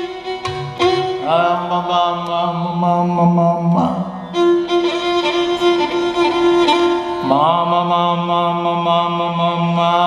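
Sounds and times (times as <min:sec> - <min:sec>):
man singing long note: 0:01.2 - 0:04.3, 0:07.1 - 0:10.0
tambura drone: 0:02.6 - 0:07.8.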